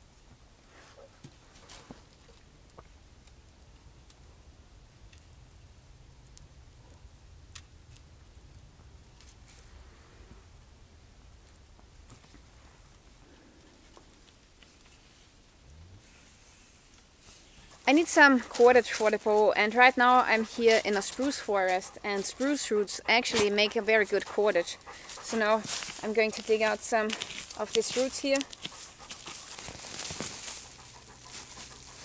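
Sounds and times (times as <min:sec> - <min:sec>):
faint low rumble: 0:00.0 - 0:24.0
sticks clicking and rustling on leaves: 0:17.7 - 0:32.0.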